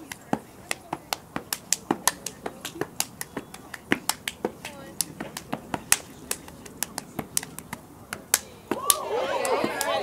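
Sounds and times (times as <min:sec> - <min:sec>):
hand claps and body slaps: 0:00.0 - 0:10.0.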